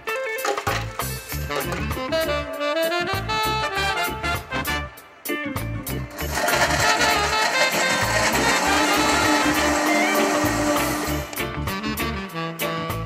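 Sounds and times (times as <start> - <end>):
upbeat background music: 0.0 - 13.0
blender motor whirring: 6.1 - 11.4.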